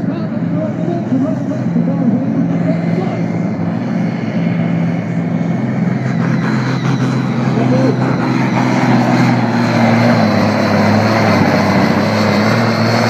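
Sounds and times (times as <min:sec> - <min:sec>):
tractor diesel engine under load: 0:00.0 - 0:13.0.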